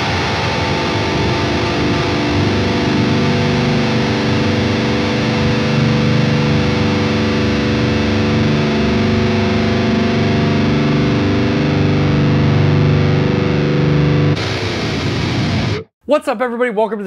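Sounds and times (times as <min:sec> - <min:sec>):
distorted electric guitar chords: 0:00.0 - 0:15.9.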